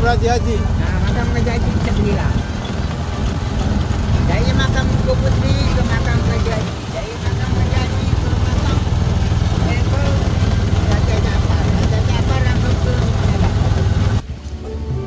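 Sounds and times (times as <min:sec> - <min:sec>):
indistinct voices: 0:00.0 - 0:15.0
vehicle rumble: 0:00.0 - 0:15.0
violin music: 0:00.0 - 0:15.0.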